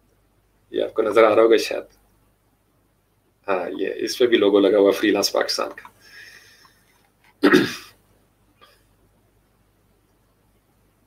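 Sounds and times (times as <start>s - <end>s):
man's sharp burst of breath: 6.0s - 6.7s.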